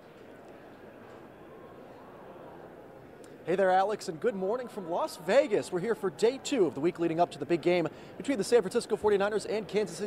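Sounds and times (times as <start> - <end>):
background chatter of crowd: 0.0 - 10.0.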